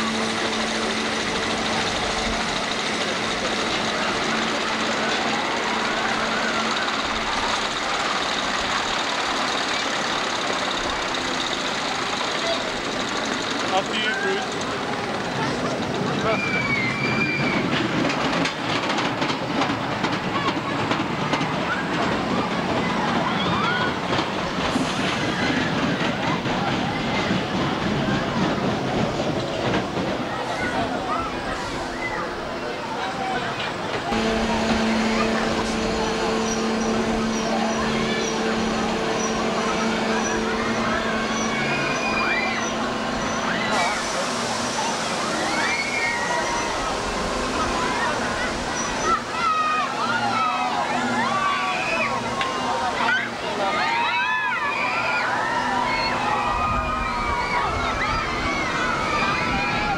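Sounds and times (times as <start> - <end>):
people's voices and calls: 0.0 - 59.9
ride wheels clattering over track joints: 0.0 - 59.9
steady background noise: 0.0 - 59.9
low hum: 34.1 - 44.8.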